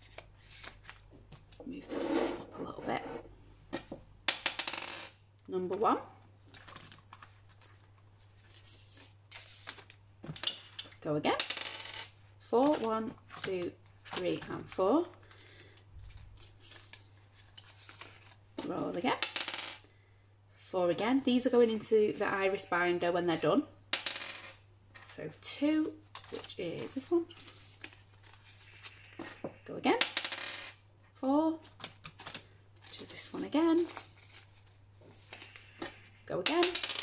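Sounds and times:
plastic sleeves and paper rustling: 0.0s - 1.6s, 6.4s - 10.0s, 12.6s - 19.0s, 26.1s - 29.2s, 31.6s - 36.1s
person speaking: 18.6s - 19.2s, 20.7s - 23.7s, 25.2s - 27.3s, 32.9s - 34.0s.

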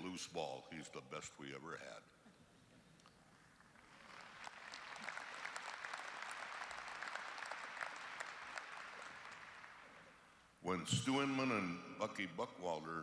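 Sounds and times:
audience applauding: 3.6s - 10.4s.

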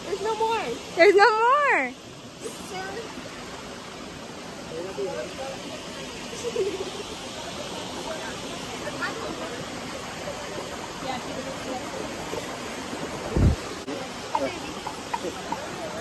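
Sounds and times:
flowing river water: 0.0s - 16.0s
faint voices talking: 4.4s - 16.0s.

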